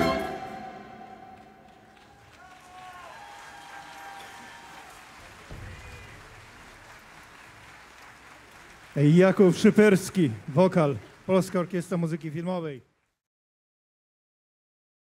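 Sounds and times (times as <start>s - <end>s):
audience cheering: 0.0s - 12.6s
audience applause: 1.3s - 13.2s.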